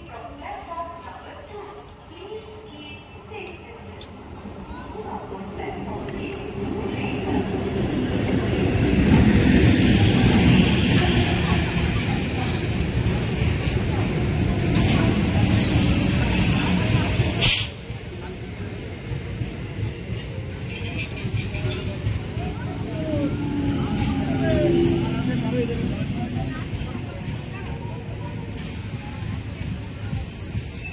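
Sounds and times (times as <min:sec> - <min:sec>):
people's voices: 0:00.0 - 0:30.9
train wheels rumbling: 0:00.5 - 0:30.9
sharp hiss of air: 0:17.4 - 0:17.8.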